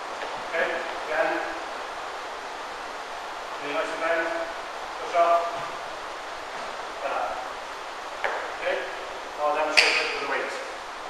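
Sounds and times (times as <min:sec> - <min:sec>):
steady background hiss: 0:00.0 - 0:11.0
man's voice: 0:03.6 - 0:05.7.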